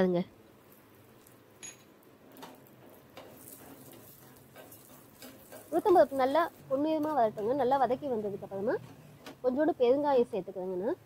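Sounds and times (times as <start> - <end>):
woman speaking: 0.0 - 0.3, 5.7 - 8.8, 9.4 - 11.0
spoon stirring seeds in a pan: 2.3 - 8.6.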